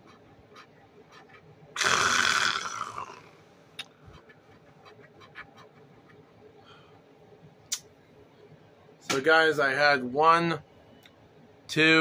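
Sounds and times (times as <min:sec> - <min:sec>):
scratching a lottery ticket: 0:04.1 - 0:06.3.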